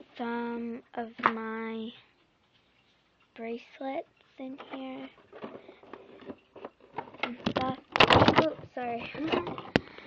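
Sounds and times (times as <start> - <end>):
girl speaking: 0.0 - 2.1, 3.4 - 5.2, 7.2 - 9.6.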